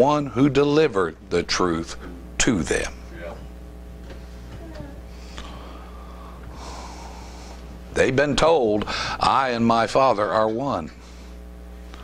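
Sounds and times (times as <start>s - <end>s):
low electrical hum: 0.0s - 12.0s
man breathing in: 5.1s - 7.7s, 8.9s - 9.2s.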